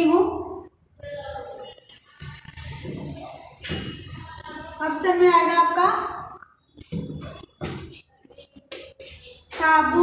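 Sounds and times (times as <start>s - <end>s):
chalk strokes on a blackboard: 7.8s - 9.6s.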